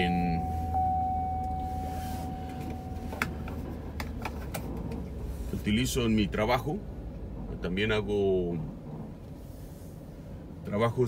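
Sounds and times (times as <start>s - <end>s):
faint thin tone: 0.0s - 3.2s
car engine and road rumble: 0.0s - 11.0s.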